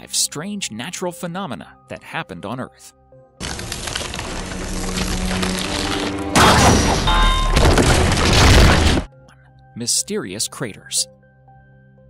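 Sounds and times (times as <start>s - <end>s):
noisy crashing: 3.4s - 9.1s.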